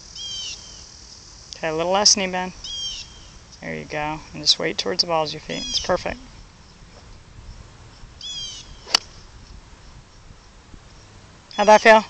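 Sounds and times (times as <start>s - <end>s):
golf club striking ball: 8.7s - 9.3s.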